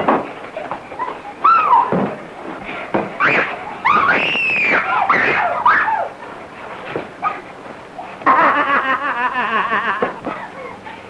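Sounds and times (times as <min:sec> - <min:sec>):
person cackling laughter: 0:08.2 - 0:11.0.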